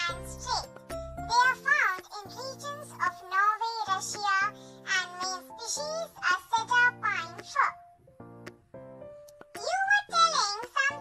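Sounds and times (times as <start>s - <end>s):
children's background music: 0.0s - 11.0s
child-like voice singing: 9.6s - 11.0s.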